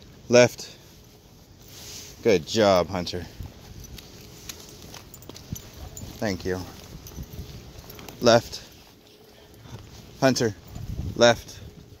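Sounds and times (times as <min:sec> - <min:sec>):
footsteps rustling on grass: 0:00.1 - 0:12.0.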